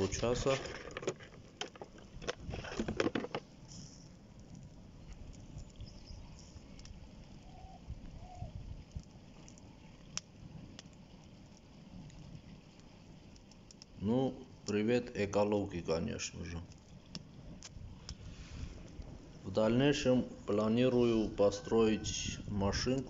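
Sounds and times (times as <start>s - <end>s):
cable insulation crackling and popping: 0.0s - 21.6s, 22.2s - 23.0s
low steady rush of flame: 0.0s - 23.0s.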